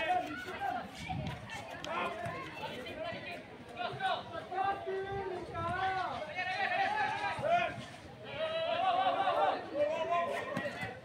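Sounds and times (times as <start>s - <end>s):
people shouting: 8.3s - 11.0s.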